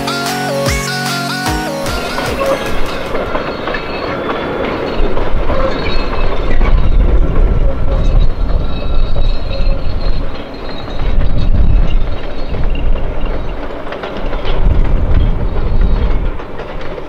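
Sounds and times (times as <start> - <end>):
train wheels rumbling on rails: 1.9 - 17.0.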